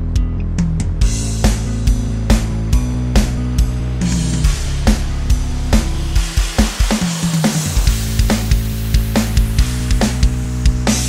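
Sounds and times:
steady drum beat: 0:00.0 - 0:11.0.

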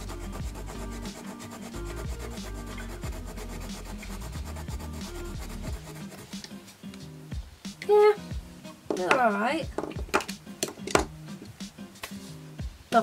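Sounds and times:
coloured pencil scratching on paper: 0:00.0 - 0:06.5
background music: 0:00.0 - 0:13.0.

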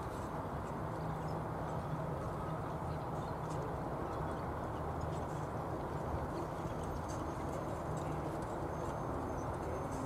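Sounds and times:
hoofbeats of trotting ponies on sand: 0:00.0 - 0:10.0.

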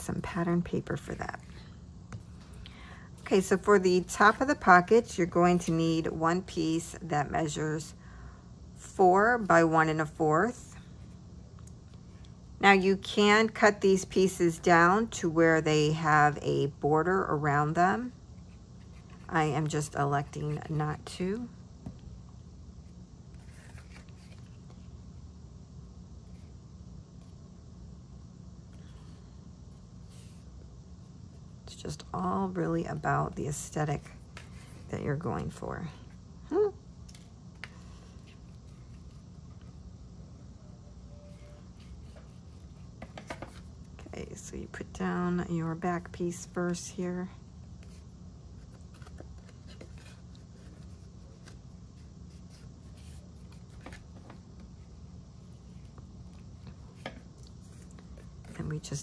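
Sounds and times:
steady low hum: 0:00.0 - 0:59.0
paper rustling and tapping: 0:43.0 - 0:43.6
paper rustling: 0:48.6 - 0:54.6.

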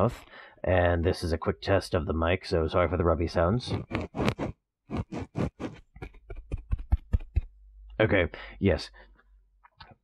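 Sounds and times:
microphone handling noise: 0:03.7 - 0:07.4
microphone thumps against beard: 0:03.8 - 0:07.5.

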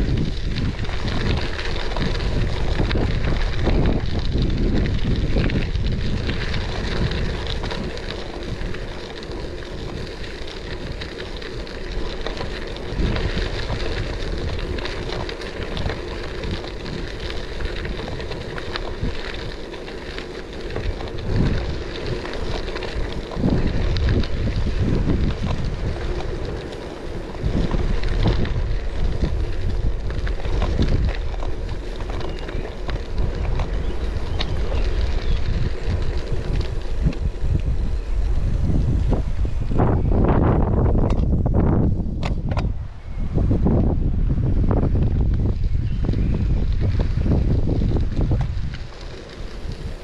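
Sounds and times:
tyres rolling on gravel: 0:00.0 - 0:50.0
wind buffeting microphone: 0:00.0 - 0:50.0.

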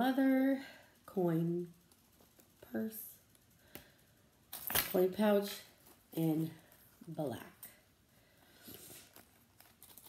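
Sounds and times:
coin pouch handling clicks and rustles: 0:04.5 - 0:05.0, 0:09.1 - 0:10.0.

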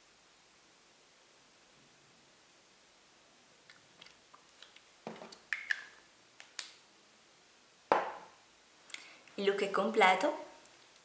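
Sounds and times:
lip smack: 0:03.7 - 0:06.8
moist lip clicks: 0:03.7 - 0:06.8, 0:08.9 - 0:09.1.

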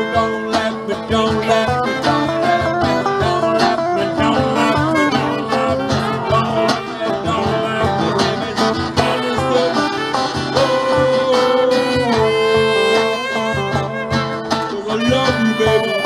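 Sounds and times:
cajon beat: 0:00.0 - 0:16.0
electric guitar: 0:00.0 - 0:16.0
strummed acoustic guitar: 0:00.0 - 0:16.0
saxophone long held note: 0:10.8 - 0:14.4.

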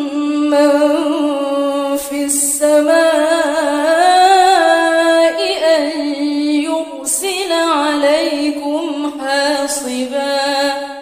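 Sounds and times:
person chanting recitation: 0:00.0 - 0:10.9.

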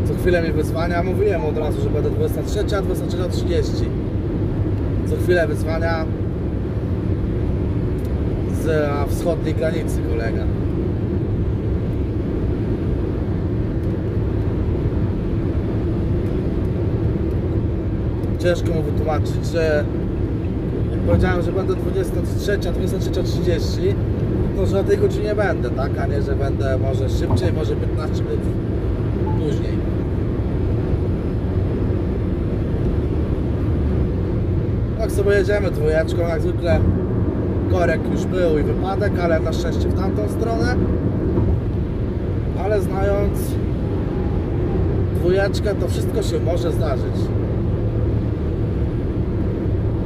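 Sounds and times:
tyre and road noise: 0:00.0 - 0:50.0
vehicle engine drone: 0:00.0 - 0:50.0.

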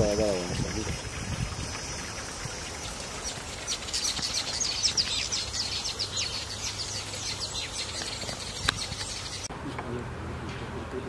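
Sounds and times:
small birds chirping: 0:00.0 - 0:09.5
outdoor background noise: 0:00.0 - 0:11.0.

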